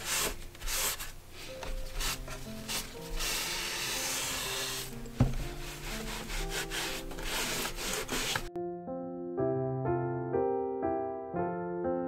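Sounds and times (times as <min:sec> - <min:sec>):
tissue rubbing on wood: 0:00.0 - 0:08.5
soft piano music: 0:00.0 - 0:12.0
sharp knock on wood: 0:05.2 - 0:05.5.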